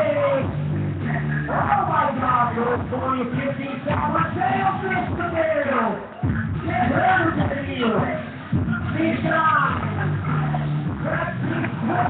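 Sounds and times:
faint music: 0.0 - 12.0
faint voices: 0.0 - 12.0.

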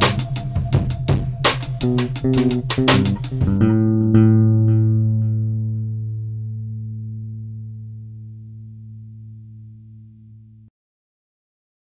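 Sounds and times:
electric guitar and bass chord ringing: 0.0 - 10.7.

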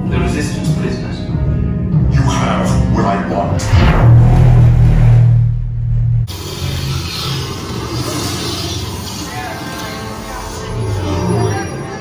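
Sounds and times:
loud low rumbling effect: 3.5 - 6.6.

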